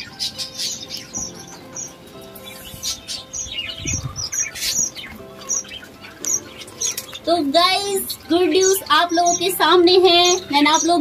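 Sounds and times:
small birds chirping: 0.0 - 11.0
soft background music: 0.0 - 11.0.

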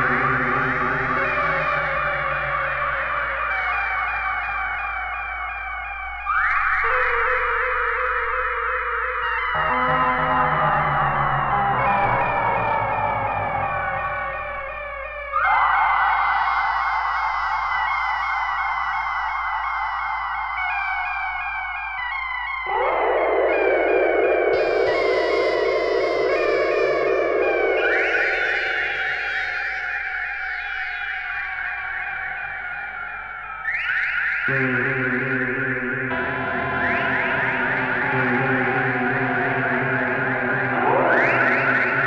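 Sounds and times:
electronic synthesizer music: 34.4 - 42.0.

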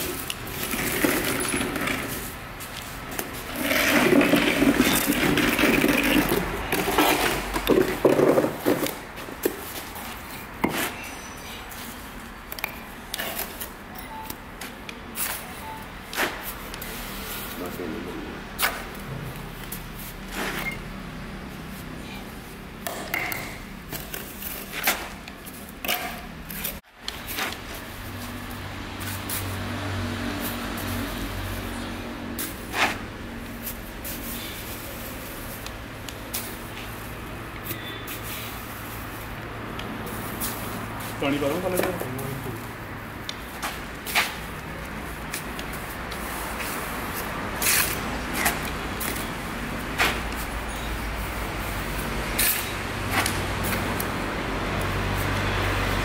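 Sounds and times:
trowel scraping mortar: 3.3 - 9.7.

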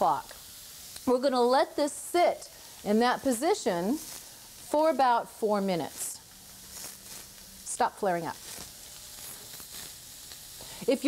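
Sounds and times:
faint flame crackles: 0.0 - 11.0
steak sizzling on grill: 0.0 - 11.0.

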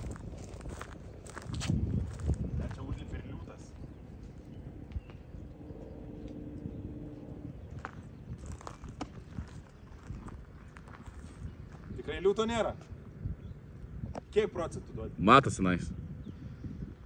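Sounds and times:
faint low hum: 0.0 - 17.0.

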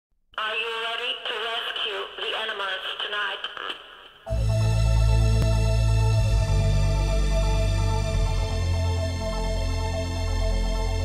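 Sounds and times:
person speaking in radio-like tone: 0.4 - 4.0.

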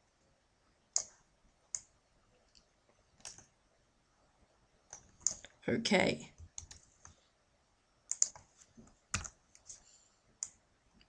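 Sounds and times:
computer mouse clicks: 0.9 - 1.9, 2.5 - 3.5, 4.9 - 5.6, 6.4 - 7.2, 8.1 - 9.8, 10.4 - 10.6.

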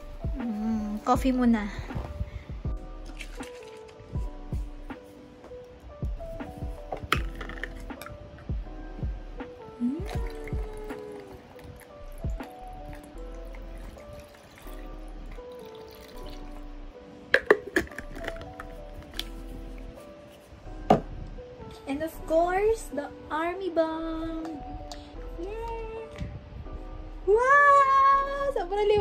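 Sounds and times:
background music with held notes: 0.0 - 29.0
coffee pouring onto ice: 12.9 - 16.5.

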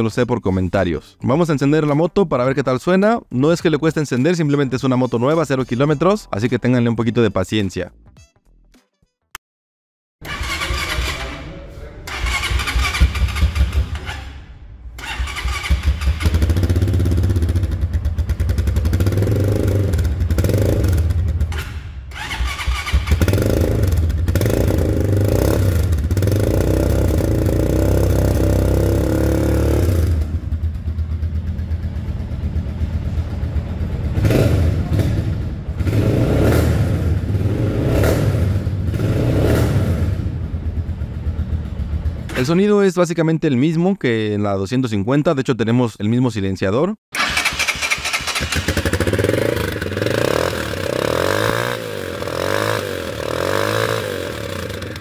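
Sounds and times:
motorcycle engine revving: 10.2 - 14.4, 15.0 - 42.4, 47.2 - 55.0.

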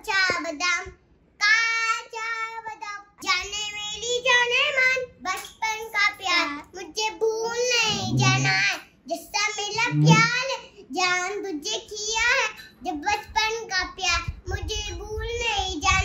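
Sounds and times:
young children singing: 7.8 - 8.6, 9.8 - 10.3.

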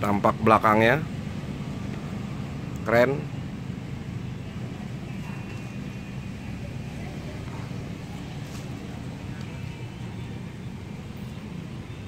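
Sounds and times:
low background hum and rumble: 0.0 - 12.0.

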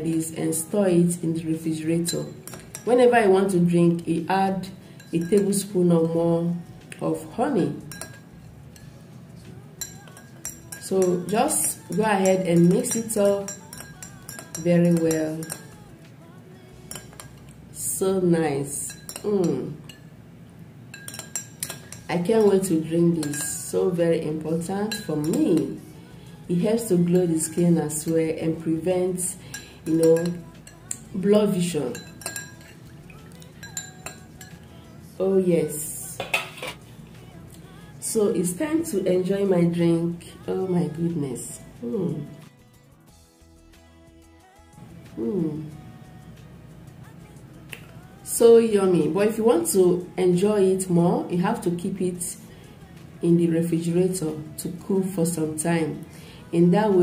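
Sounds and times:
spoon clinking against glass: 2.0 - 3.1, 4.9 - 5.7, 7.7 - 9.0, 9.8 - 15.9, 16.8 - 17.6, 18.8 - 20.1, 20.9 - 23.8, 24.9 - 25.9, 29.4 - 34.8, 36.1 - 36.8.

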